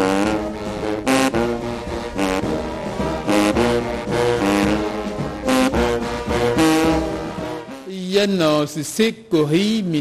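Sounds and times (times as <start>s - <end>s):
brass band chords: 0.0s - 10.0s.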